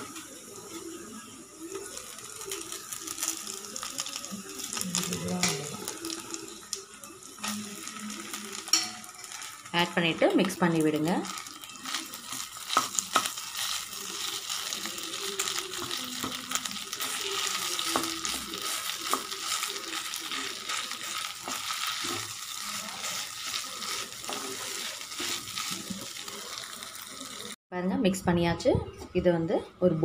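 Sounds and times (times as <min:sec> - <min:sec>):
food sizzling in oil in a pan: 0:00.0 - 0:27.6
wooden spatula scraping a pan: 0:17.0 - 0:27.4.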